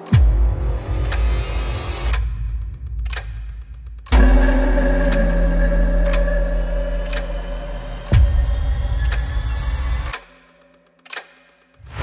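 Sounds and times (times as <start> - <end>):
deep bass drone: 0.2 - 10.1
sharp clicks: 2.1 - 8.4, 10.0 - 11.8
faint high tones: 4.2 - 8.8.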